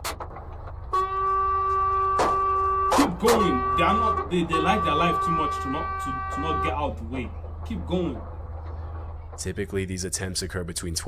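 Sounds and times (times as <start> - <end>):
truck horn blast: 0.9 - 8.2.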